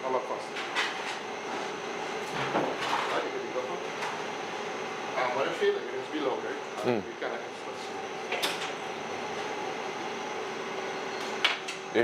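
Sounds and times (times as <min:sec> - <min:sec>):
testing machine humming: 0:03.3 - 0:12.0.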